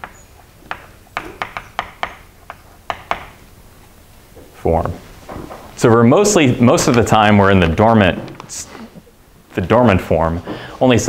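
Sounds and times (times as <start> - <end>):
chalk tapping on blackboard: 0.0 - 3.4.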